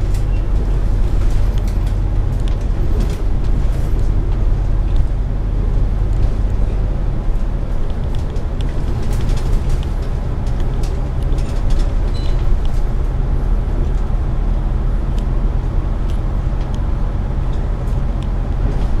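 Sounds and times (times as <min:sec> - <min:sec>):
bodywork rattles and ticks: 0:00.0 - 0:19.0
bus engine drone: 0:00.0 - 0:19.0
road noise: 0:00.0 - 0:19.0.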